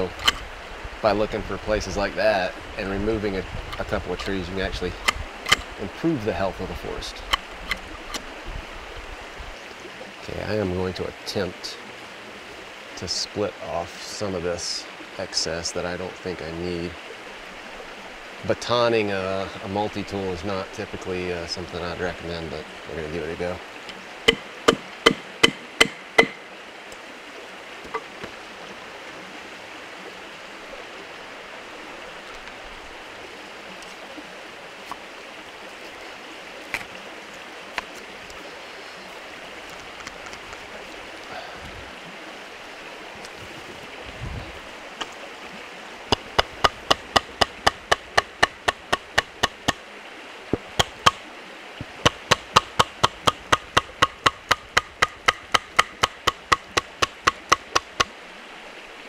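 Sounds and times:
steady rushing hiss: 0.0s - 59.0s
wooden baton knocking on blade: 24.3s - 26.4s, 46.1s - 49.8s, 50.6s - 51.2s, 52.0s - 58.1s.

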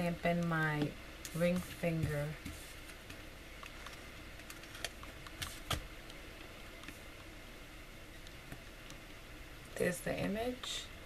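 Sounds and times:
low room hiss: 0.0s - 11.0s.

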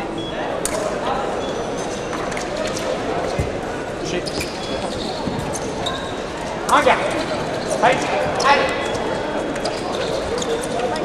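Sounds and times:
background voices in large room: 0.0s - 11.0s.

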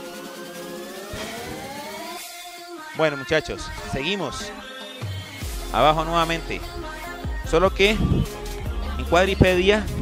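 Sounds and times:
electronic workout music: 0.0s - 10.0s
rising synth sweep: 0.7s - 2.3s.

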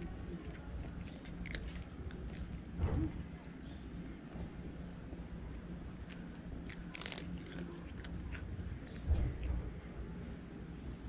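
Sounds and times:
cat crunching dry kibble: 0.0s - 2.8s, 5.4s - 9.8s.

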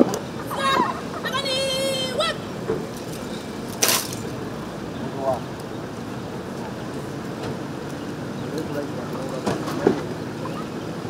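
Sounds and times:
scattered voices: 0.0s - 5.7s
vehicle rolling slowly: 0.0s - 11.0s.

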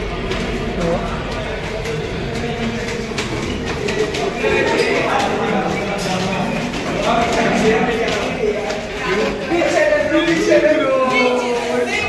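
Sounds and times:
footsteps on stairs: 0.0s - 12.0s
steady background noise: 0.0s - 12.0s.

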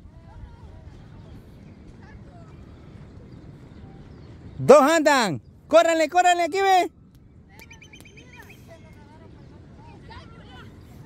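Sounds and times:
faint distant voices: 0.0s - 11.0s
short chirping calls: 7.5s - 9.0s.

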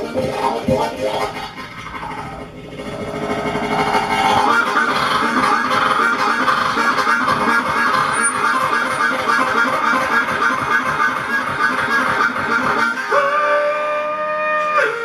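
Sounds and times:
blues harmonica solo: 0.0s - 15.0s.

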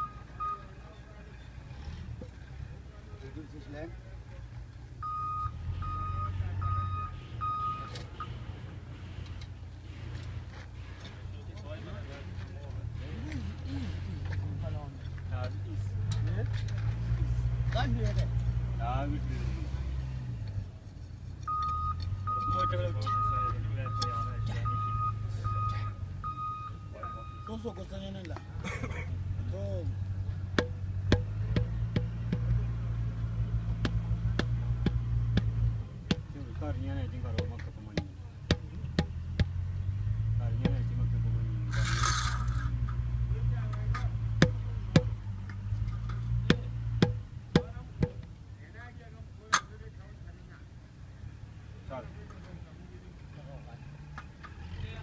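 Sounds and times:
engine humming: 0.0s - 55.0s
indistinct voices talking: 21.5s - 50.7s
scrape: 41.7s - 42.7s.

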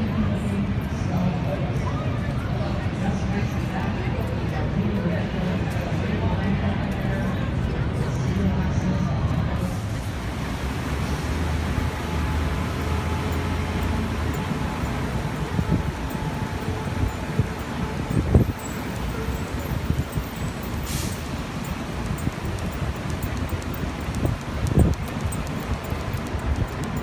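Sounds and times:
low traffic hum: 0.0s - 27.0s.

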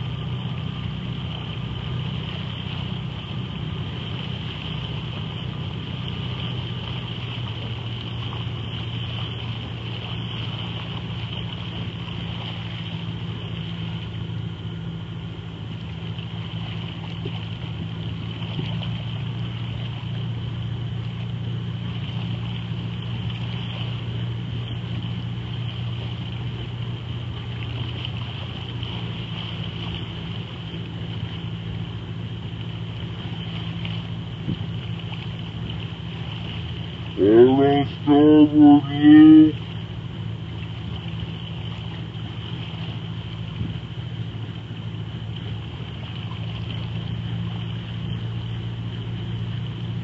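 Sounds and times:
outboard motor running: 0.0s - 50.0s.

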